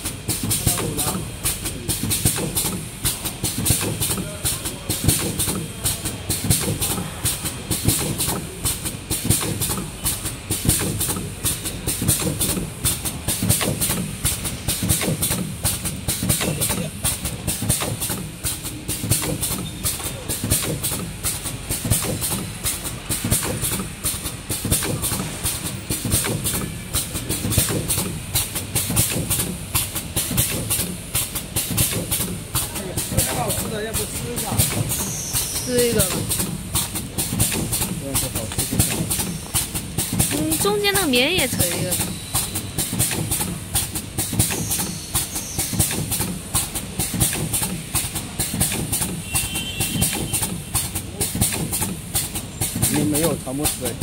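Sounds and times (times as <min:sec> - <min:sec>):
packaging machine clattering: 0:00.3 - 0:54.0.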